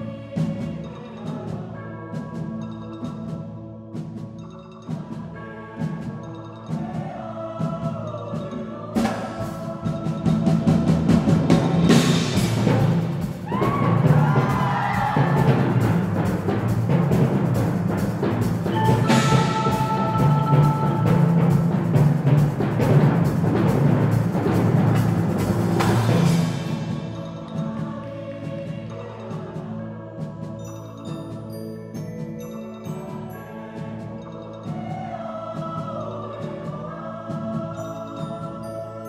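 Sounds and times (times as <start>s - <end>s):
percussion ensemble playing: 4.0s - 38.8s
marimba chord: 4.1s - 39.0s
timpani rapid strokes: 9.0s - 30.6s
voices singing gliding high lines: 18.6s - 22.0s, 26.1s - 39.0s.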